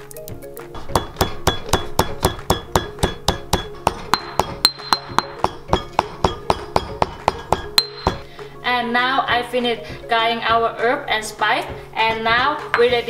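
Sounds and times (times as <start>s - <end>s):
stone pestle pounding in mortar: 0.8s - 8.3s.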